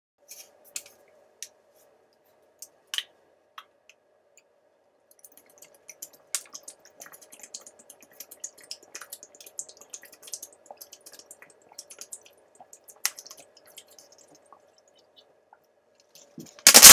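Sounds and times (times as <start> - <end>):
plastic bottle crackling: 16.6 - 16.9.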